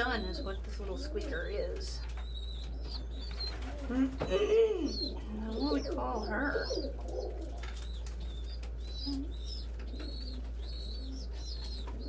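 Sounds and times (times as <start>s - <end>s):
pigeons cooing: 0.0s - 12.0s
young pigeon peeping: 0.0s - 12.0s.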